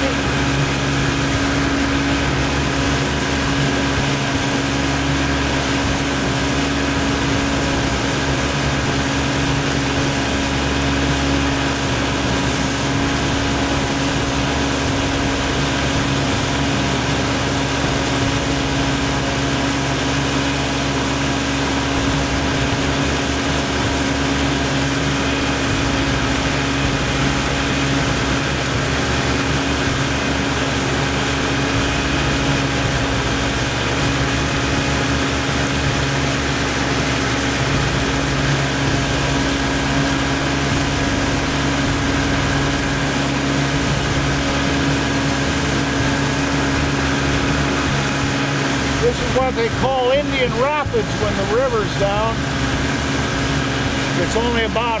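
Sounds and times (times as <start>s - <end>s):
motorboat engine running: 0.0s - 55.0s.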